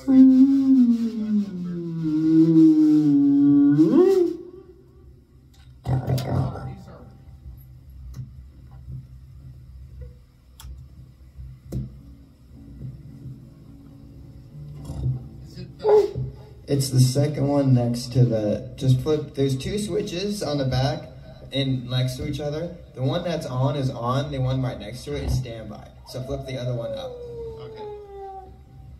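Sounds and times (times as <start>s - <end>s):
voice holding sliding note: 0.0s - 4.9s
guitar amplifier hum: 0.0s - 28.9s.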